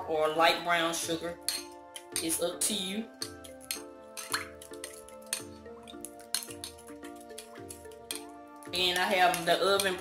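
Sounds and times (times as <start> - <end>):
background music: 0.0 - 10.0
spoon stirring liquid in glass bowl: 1.3 - 10.0.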